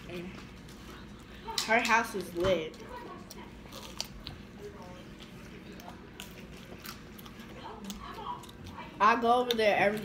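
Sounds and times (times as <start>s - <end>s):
chewing food: 0.0s - 10.0s.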